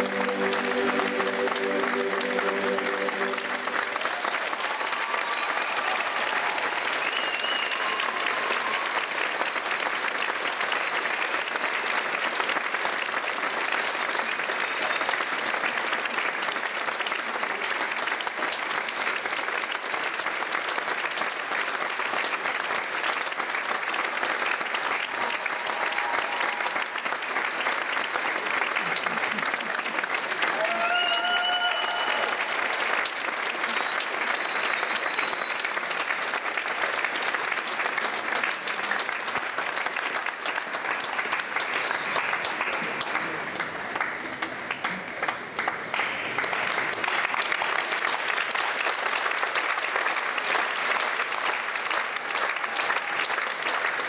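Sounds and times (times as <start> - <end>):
audience applauding: 0.0 - 54.0
high shouts from crowd: 30.5 - 32.5.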